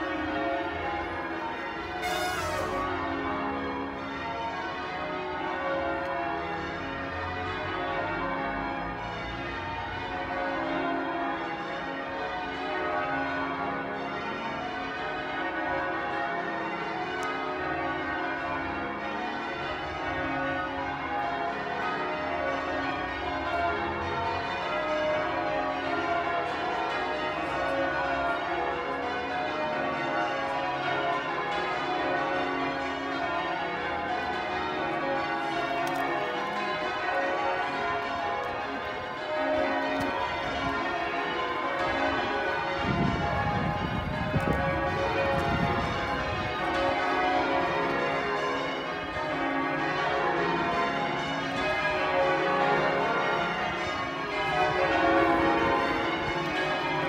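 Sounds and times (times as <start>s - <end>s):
church bells change ringing: 0.0s - 57.0s.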